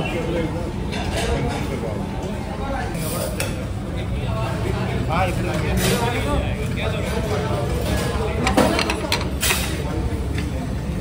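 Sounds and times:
dishes clinking: 7.1 - 10.0.

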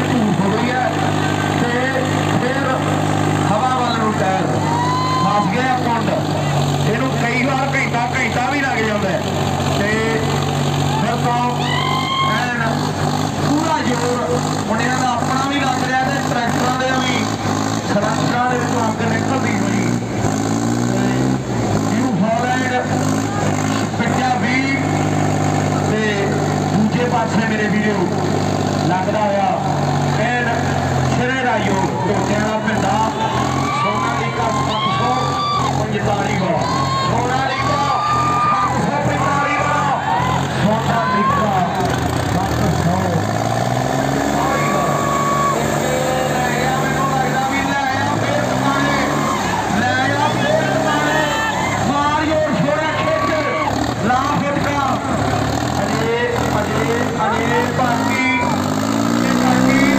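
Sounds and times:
announcer over loudspeaker: 0.0 - 20.0, 21.0 - 59.9
tractor diesel engines under load: 0.0 - 59.9.

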